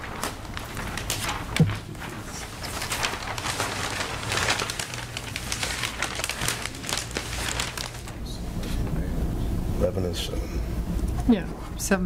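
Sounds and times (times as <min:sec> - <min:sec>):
papers rustling: 0:00.0 - 0:08.3
steady low hum: 0:00.0 - 0:12.0.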